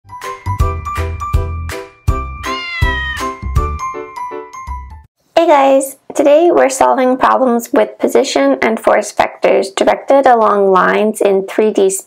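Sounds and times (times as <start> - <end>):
cat meowing: 2.4 - 3.4.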